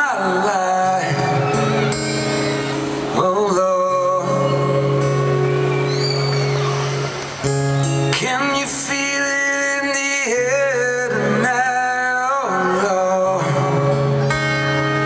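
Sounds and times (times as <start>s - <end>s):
amplified acoustic guitar chords: 0.0s - 15.0s.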